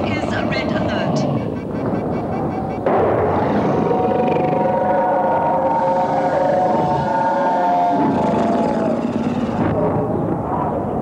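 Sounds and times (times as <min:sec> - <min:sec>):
rush of noise: 0:00.0 - 0:11.0.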